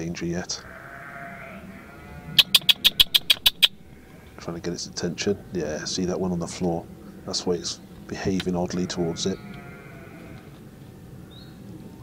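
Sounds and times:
sharp high clicks: 2.4 - 3.8.

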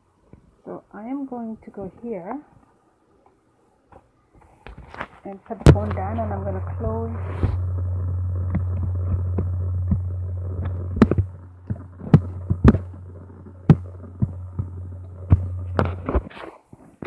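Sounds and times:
steady low hum: 5.0 - 16.5.

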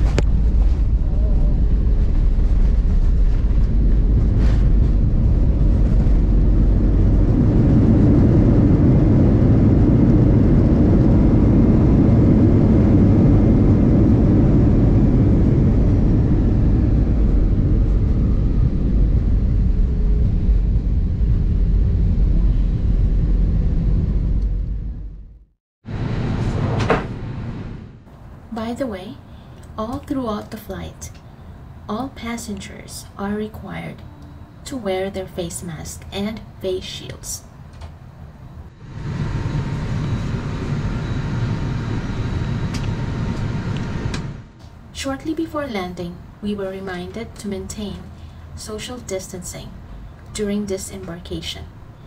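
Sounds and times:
wheels rumbling on runway: 0.0 - 28.2
jet engines rumbling: 0.0 - 52.0.

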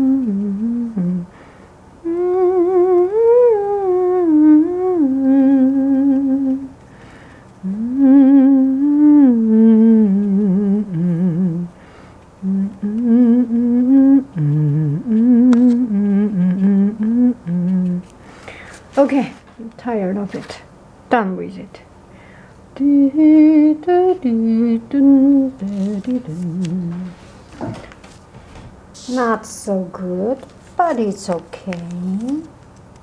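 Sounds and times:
person humming a tune: 0.0 - 1.4, 2.0 - 6.8, 7.6 - 18.1, 22.8 - 27.2.

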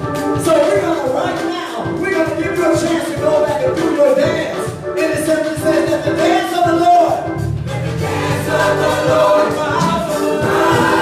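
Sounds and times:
keyboard: 0.0 - 11.0
gospel choir singing: 7.2 - 11.0.

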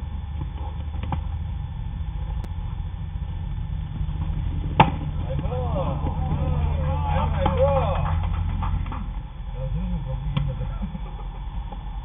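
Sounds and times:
steady low rumble: 0.0 - 12.0
players calling out: 4.2 - 11.6.

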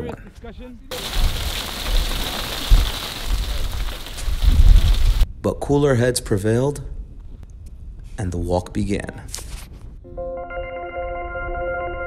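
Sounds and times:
rain hissing: 0.9 - 5.3
wind buffeting microphone: 0.9 - 5.4.

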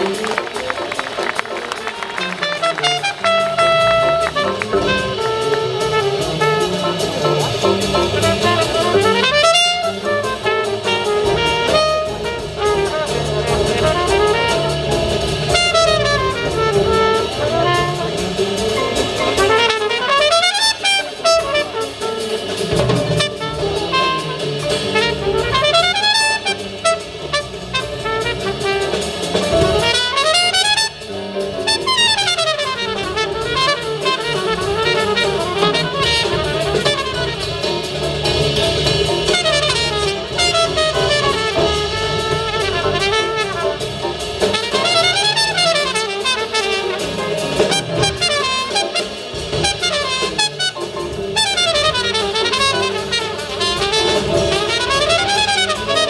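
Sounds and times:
drum kit: 0.0 - 56.0
piano: 0.0 - 56.0
trumpet solo: 0.0 - 56.0
upright double bass: 0.0 - 56.0.

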